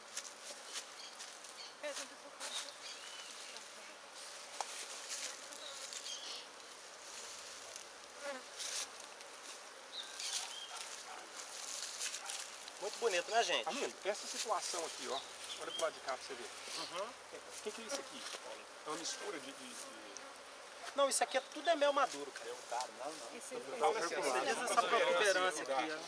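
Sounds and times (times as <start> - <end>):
honey bees buzzing: 0.0 - 26.0.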